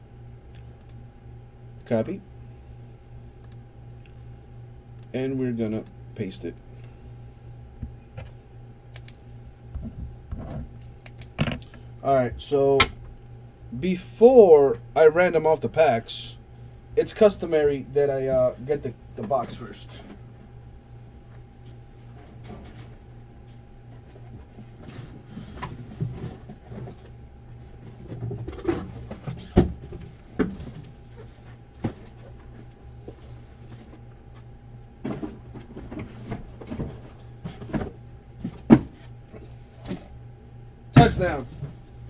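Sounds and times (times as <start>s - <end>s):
steady electrical hum: 0.0s - 42.0s.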